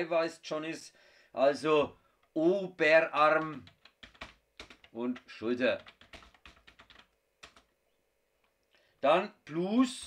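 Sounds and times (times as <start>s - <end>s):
computer keyboard typing: 3.1s - 7.7s.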